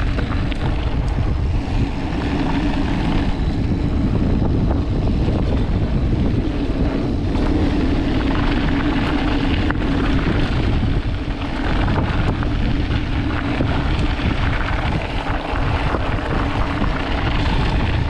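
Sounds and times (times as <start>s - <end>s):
small rattles and clicks: 0.0s - 1.4s
bike tyres crunching on gravel: 0.0s - 18.0s
wind rush on microphone: 0.0s - 18.0s.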